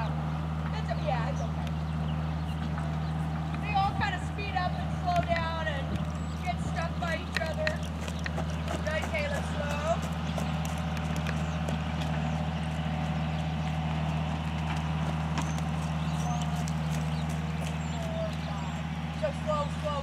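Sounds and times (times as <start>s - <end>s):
horse hooves on dirt: 0.0s - 20.0s
steady low hum: 0.0s - 20.0s.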